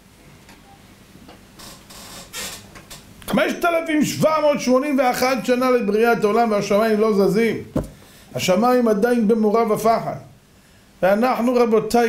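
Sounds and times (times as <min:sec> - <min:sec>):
man breathing into microphone: 0:07.9 - 0:08.3.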